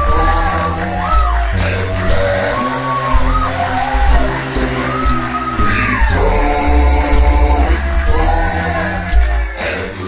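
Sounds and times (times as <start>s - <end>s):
a cappella gospel singing: 0.0s - 10.0s.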